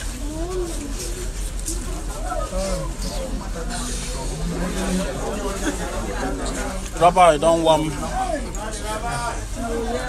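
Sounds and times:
people's voices outdoors: 0.0s - 10.0s.

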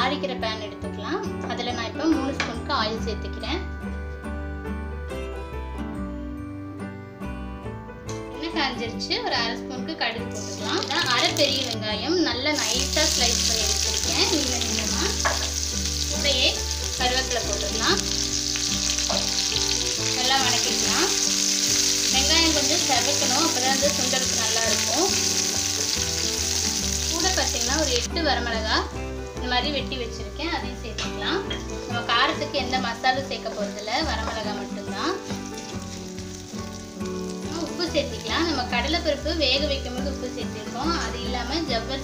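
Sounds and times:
onions sizzling in hot oil: 10.3s - 11.9s, 12.6s - 28.9s, 32.0s - 41.6s.

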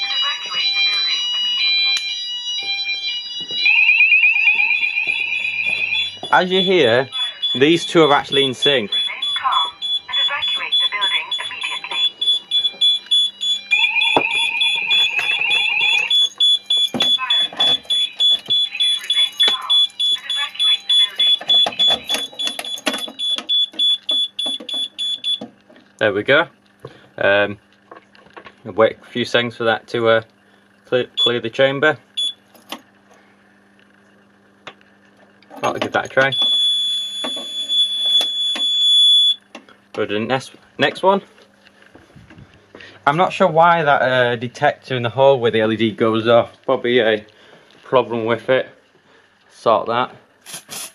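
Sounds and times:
chirping alarm tone: 0.0s - 25.5s, 31.0s - 32.4s, 36.2s - 39.5s
pulsing fire alarm tone: 0.0s - 25.5s, 31.0s - 32.4s, 36.2s - 39.5s.

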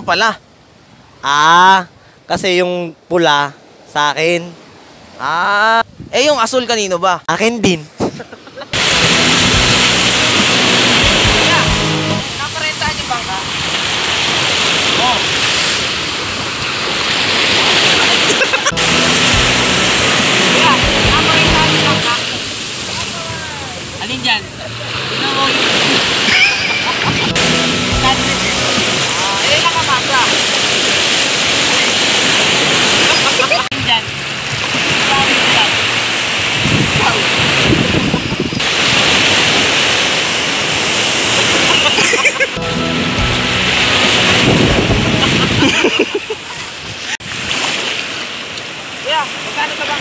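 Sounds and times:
wind noise on microphone: 5.8s - 6.3s, 36.4s - 39.8s, 44.1s - 45.8s
surf breaking on beach: 8.7s - 50.0s
low musical drone: 8.8s - 12.4s, 18.7s - 22.2s, 27.1s - 30.4s, 42.6s - 45.8s.

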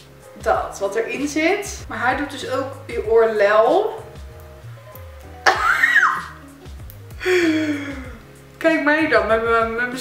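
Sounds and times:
background music: 0.0s - 10.0s
woman laughing: 5.4s - 6.3s.

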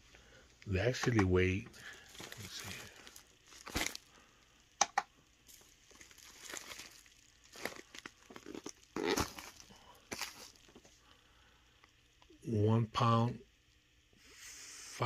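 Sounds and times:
package rustling and crinkling: 0.9s - 4.2s, 5.5s - 10.9s.

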